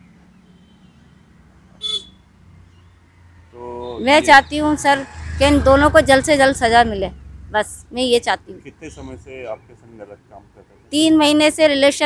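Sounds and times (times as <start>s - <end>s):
short horn toot: 1.8s - 2.2s
woman speaking: 4.0s - 8.6s, 10.9s - 12.0s.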